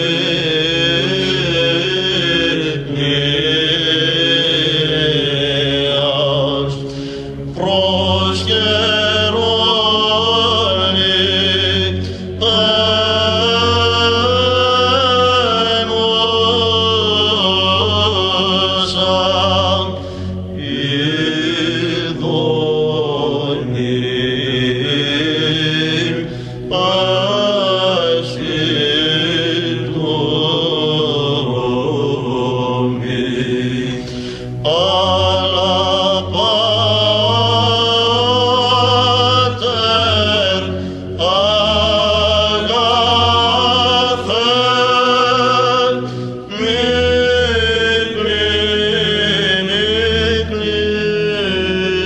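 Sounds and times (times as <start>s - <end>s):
low vocal drone: 0.0s - 52.0s.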